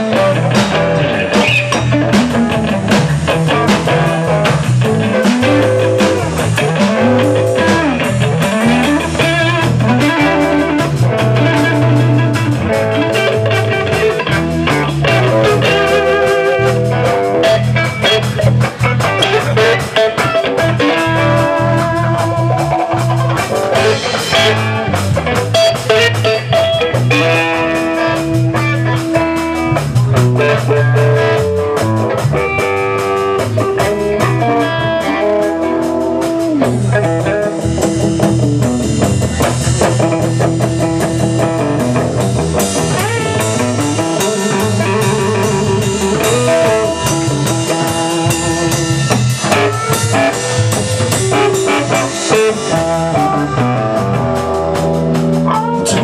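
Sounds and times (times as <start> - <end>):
bass guitar: 0.0 - 56.0
drum kit: 0.0 - 56.0
electric guitar solo: 0.0 - 56.0.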